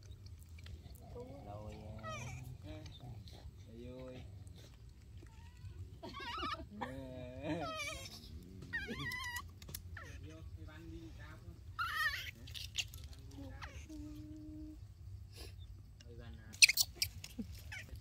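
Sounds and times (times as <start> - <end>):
baby monkeys cooing and squealing: 0.0 - 10.6, 11.6 - 14.8, 16.5 - 18.0.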